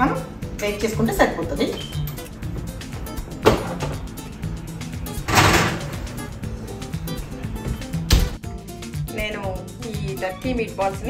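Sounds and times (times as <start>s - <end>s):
background music: 0.0s - 11.0s
oven door shutting: 5.2s - 6.2s
clunk: 5.3s - 6.0s.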